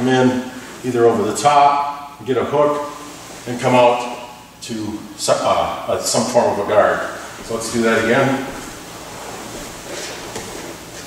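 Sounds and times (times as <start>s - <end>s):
faint steady hiss: 0.0s - 11.0s
cloth rustling: 2.7s - 3.7s, 7.2s - 11.0s
bodies shifting on foam mats: 7.4s - 11.0s.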